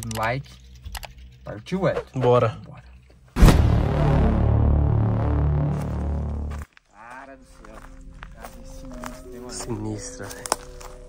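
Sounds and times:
transition hit with deep ringing: 3.4 - 6.6.

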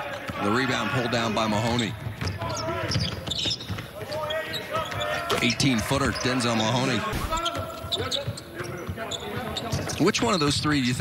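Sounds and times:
basketball bouncing on hardwood: 2.0 - 4.0.

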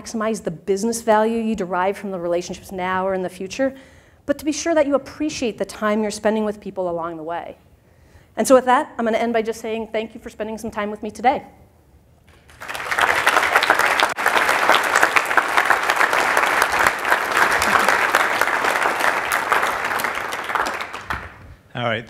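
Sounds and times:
audience applause: 12.4 - 21.4.

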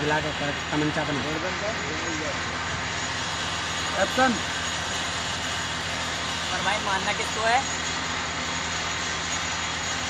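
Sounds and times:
indistinct talking: 6.2 - 7.8.

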